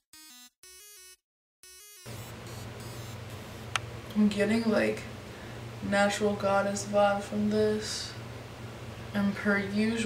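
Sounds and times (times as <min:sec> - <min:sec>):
low hum and hiss: 0:02.1 - 0:10.0.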